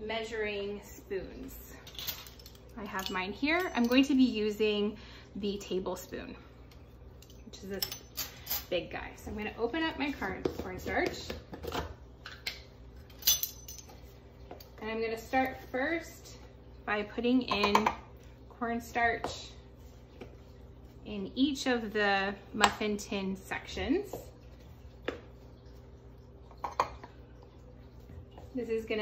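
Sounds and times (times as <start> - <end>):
faint steady hum: 0.0 - 29.0
metal spoons clinking: 1.8 - 4.2, 7.2 - 8.7, 13.1 - 14.0.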